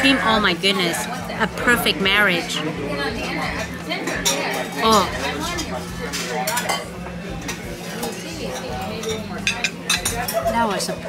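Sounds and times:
faint diners' voices: 0.0 - 11.0
cutlery clinking on a plate: 6.1 - 10.5.

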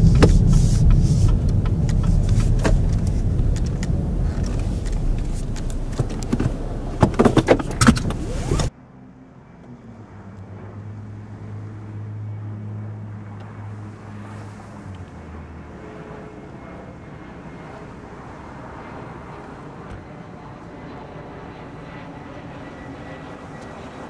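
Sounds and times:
car engine idling: 0.0 - 8.7.

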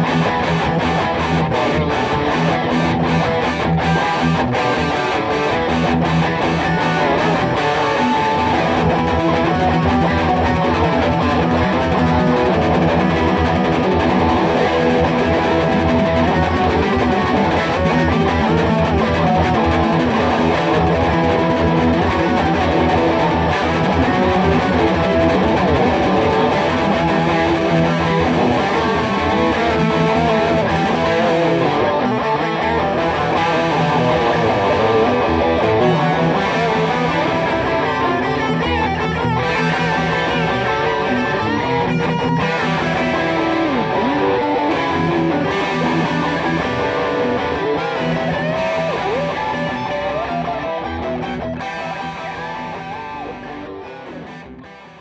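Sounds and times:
electric guitars playing: 0.0 - 55.0.

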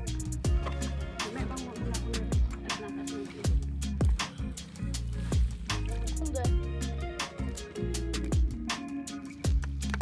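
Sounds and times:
held bass notes: 0.0 - 8.7.

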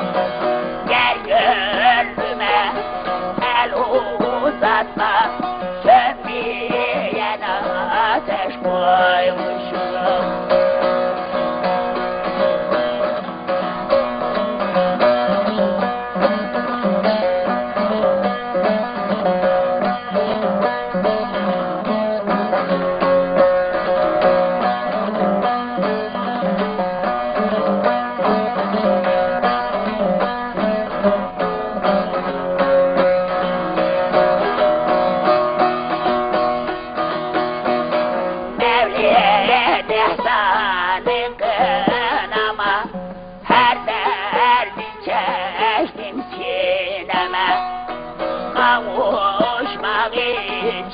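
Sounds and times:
long-necked lute playing: 0.0 - 50.9
man singing: 0.8 - 10.8, 38.6 - 47.9, 48.5 - 50.9.

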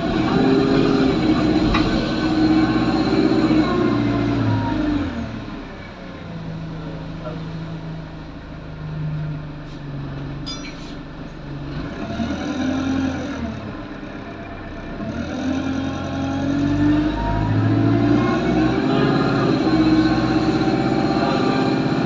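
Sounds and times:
bus engine pulling: 0.0 - 22.0.

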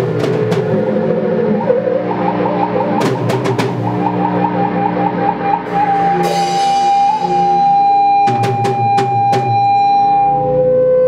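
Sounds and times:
repeating warbling tone: 0.0 - 10.6
sustained electronic drones: 0.0 - 11.0.

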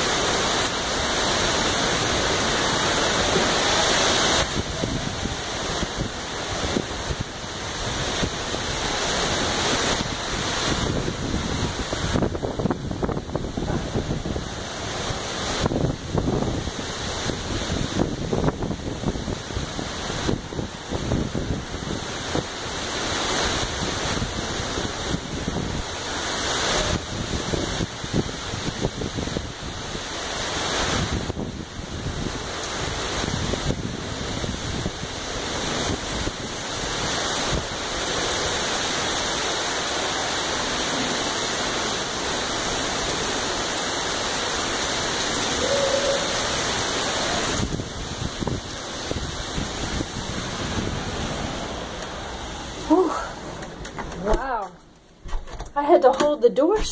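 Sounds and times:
wind gusting across microphone: 0.0 - 56.0
heavy rain downpour: 0.0 - 56.9.

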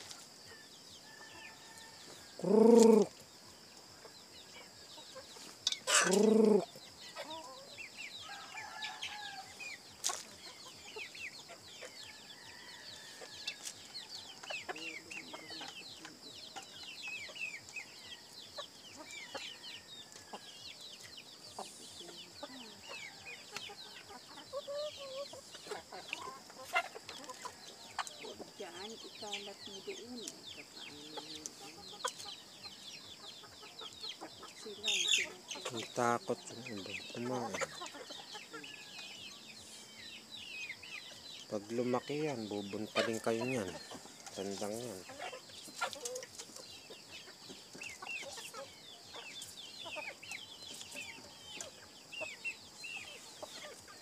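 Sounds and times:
chickens clucking and peeping: 0.0 - 54.0.

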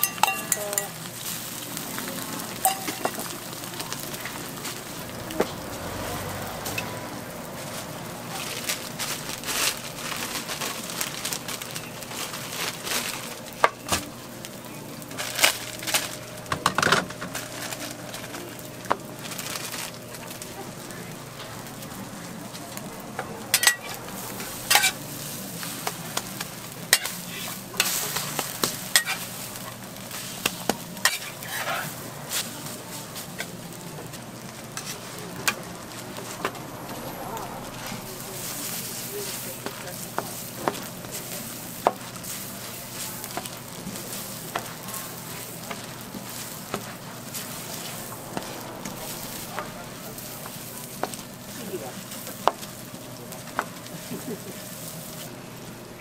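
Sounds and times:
patties sizzling on a griddle: 0.0 - 56.0
sharp crackles and clicks: 0.0 - 56.0.

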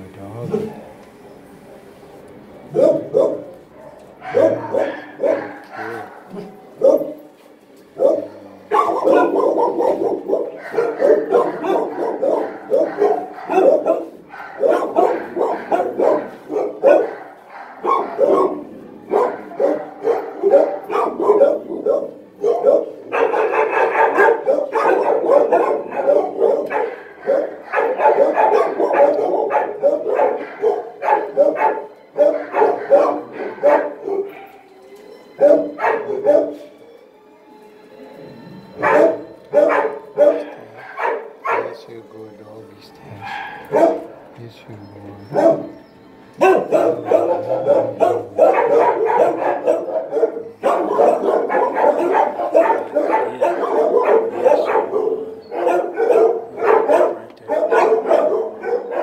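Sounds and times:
dog barking and yipping: 2.8 - 7.3, 8.0 - 34.7, 35.4 - 36.7, 38.8 - 41.8, 43.2 - 44.3, 45.2 - 59.0.

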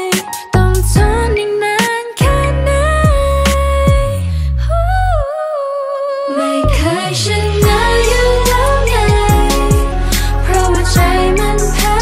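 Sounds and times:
pop backing track: 0.0 - 5.2, 6.3 - 12.0.

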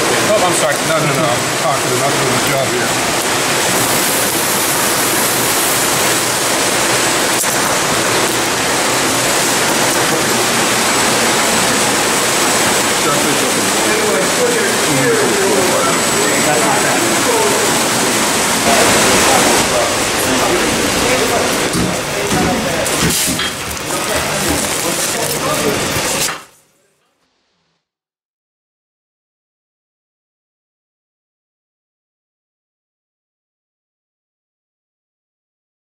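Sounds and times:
loud steady rushing noise: 0.0 - 26.3
indistinct voices: 8.6 - 26.2.

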